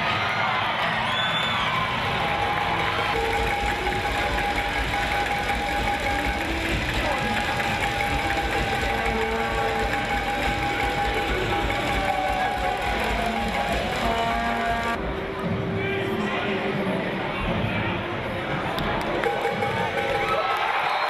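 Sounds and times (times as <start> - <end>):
arena crowd noise: 0.0 - 21.0
hand-held noisemaker rattling: 3.2 - 15.0.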